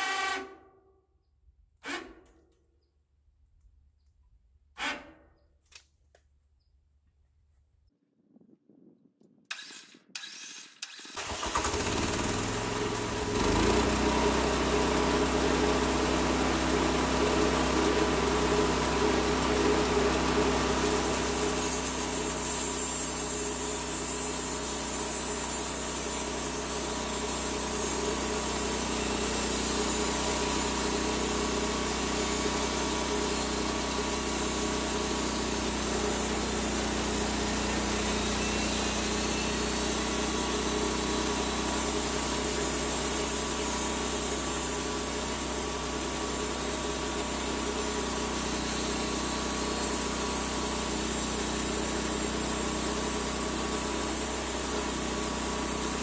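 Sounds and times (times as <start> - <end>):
band saw blade cutting log: 0.0 - 0.8, 1.8 - 2.5, 4.8 - 5.4, 9.5 - 56.0
gasoline engine cranking and running: 9.5 - 17.0.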